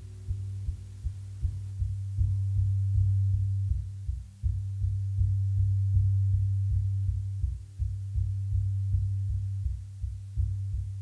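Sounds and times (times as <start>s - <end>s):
pulsing low drone: 0.0s - 11.0s.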